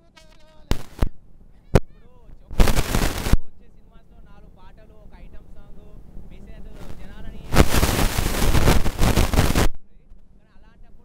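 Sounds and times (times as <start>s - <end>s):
loud dense crackling noise: 0.2s - 3.5s, 6.6s - 9.8s.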